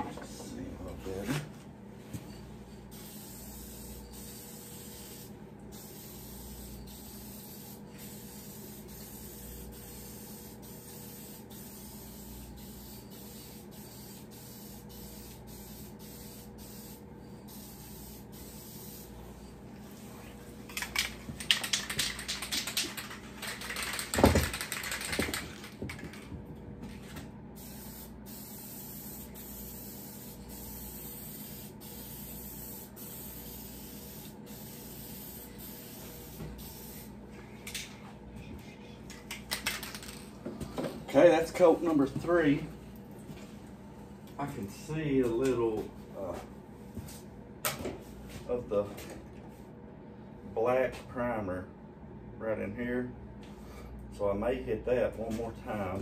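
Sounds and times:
spray paint can hissing: 0:02.9 - 0:19.1, 0:27.6 - 0:37.1.

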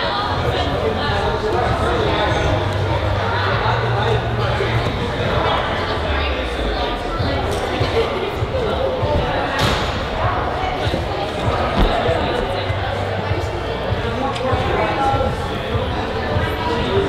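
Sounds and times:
echoing voices: 0:00.0 - 0:17.0.

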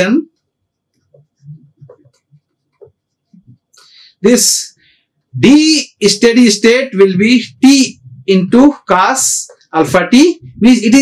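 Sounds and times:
person speaking: 0:00.0 - 0:00.3, 0:01.2 - 0:02.3, 0:04.1 - 0:04.8, 0:05.4 - 0:11.0.

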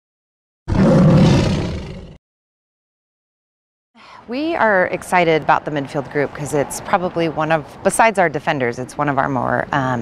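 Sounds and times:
tiger roar: 0:00.7 - 0:02.2.

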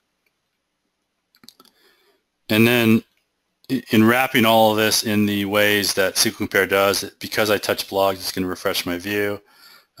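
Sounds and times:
computer mouse clicking: 0:01.3 - 0:01.8.

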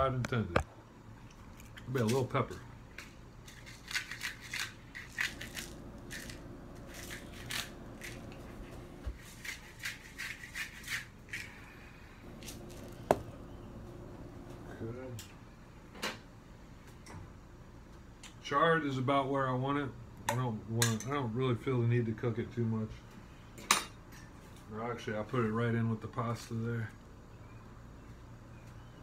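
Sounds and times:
pepper grinder crunching: 0:03.0 - 0:11.7, 0:12.3 - 0:13.2.

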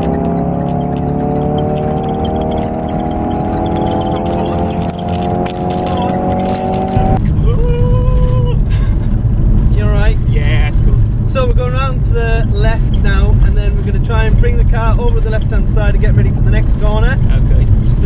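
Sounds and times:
car engine accelerating: 0:00.0 - 0:18.0
road noise: 0:00.0 - 0:18.0.

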